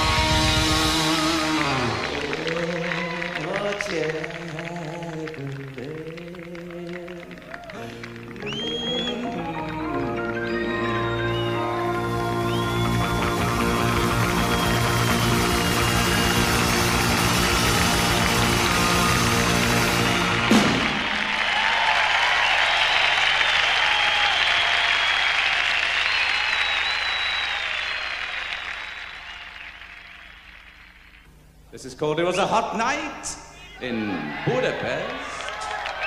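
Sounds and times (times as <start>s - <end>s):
rock band holding chord: 0.0s - 4.5s, 7.8s - 21.5s
audience applause and cheering: 0.0s - 31.3s, 33.6s - 36.0s.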